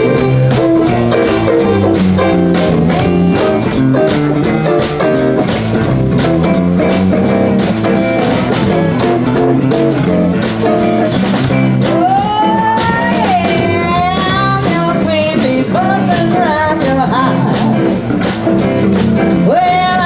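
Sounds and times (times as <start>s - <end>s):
blues band playing: 0.0s - 20.0s
drums keeping steady beat: 0.0s - 20.0s.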